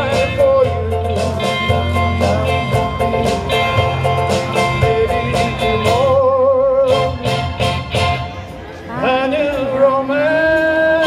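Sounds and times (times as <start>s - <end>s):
man singing: 0.0s - 8.1s, 8.9s - 11.0s
electric guitar: 0.0s - 9.8s.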